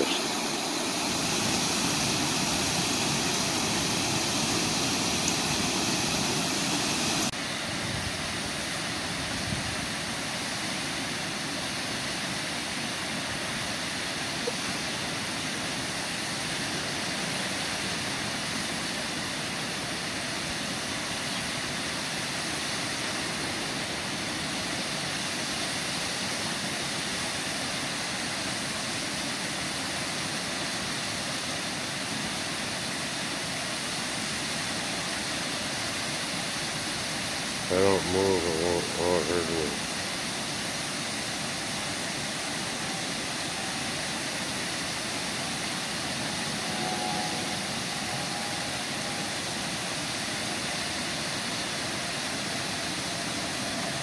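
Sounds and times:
water rushing over weir: 0:00.0 - 0:54.0.

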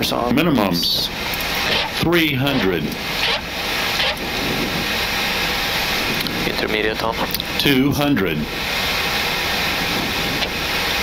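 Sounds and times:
airflow over windscreen: 0:00.0 - 0:11.0
jet engines: 0:00.0 - 0:11.0.

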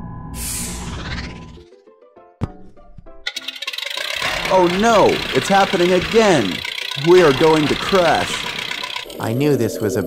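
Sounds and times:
cartoon background music: 0:00.4 - 0:10.0
fast mechanical rattle: 0:03.3 - 0:09.3.

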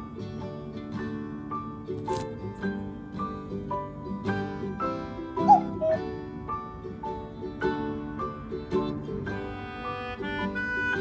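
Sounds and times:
plucked-string background music: 0:00.0 - 0:11.0
puppy whimpering: 0:05.4 - 0:06.0.

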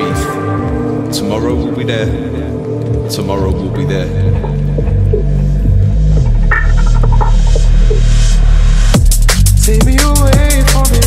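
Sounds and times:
drum and bass music: 0:00.0 - 0:11.0.

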